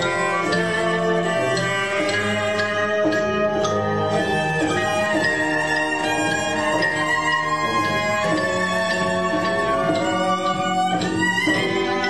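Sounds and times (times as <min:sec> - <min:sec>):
cello playing bowed notes: 0:00.0 - 0:12.0.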